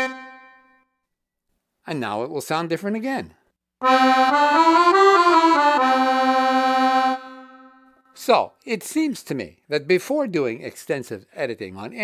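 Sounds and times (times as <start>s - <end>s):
digital accordion phrase: 0.0s - 0.8s, 3.8s - 8.0s.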